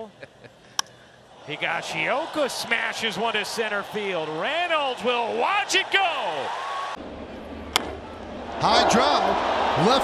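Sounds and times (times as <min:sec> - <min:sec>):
ballpark crowd noise: 0:00.8 - 0:10.0
broadcast announcer talking: 0:01.5 - 0:06.5
baseball bat cracking ball: 0:07.7 - 0:08.0.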